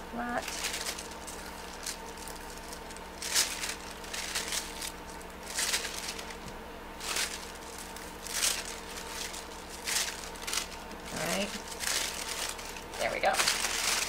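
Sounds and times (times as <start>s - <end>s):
paper rustling: 0.4s - 14.0s.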